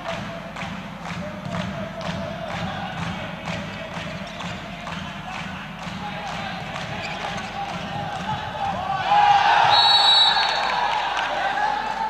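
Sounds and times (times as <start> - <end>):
murmur of voices: 0.0 - 12.0
people shouting: 7.5 - 12.0
referee's whistle: 9.7 - 10.8.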